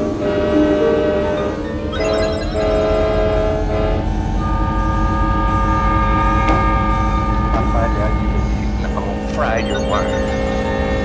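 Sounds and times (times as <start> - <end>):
film soundtrack drone: 0.0 - 11.0.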